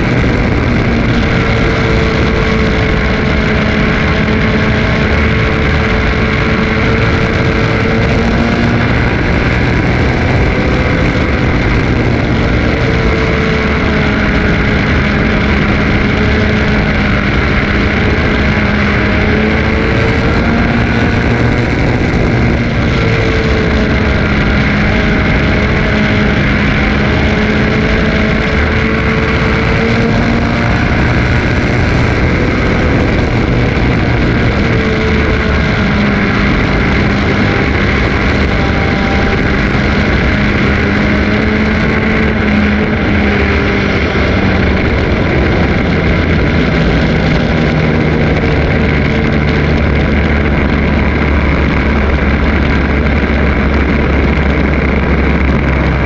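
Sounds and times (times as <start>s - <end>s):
race car engine running hard: 0.0s - 56.0s
road and wind noise: 0.0s - 56.0s.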